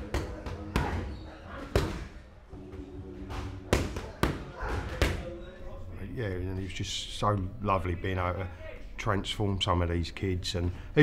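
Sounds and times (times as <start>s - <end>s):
boxing gloves smacking pads: 3.3s - 5.2s.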